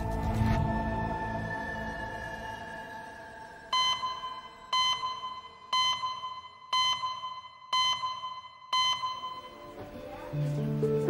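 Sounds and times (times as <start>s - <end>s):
high electronic beeps: 3.7s - 9.7s.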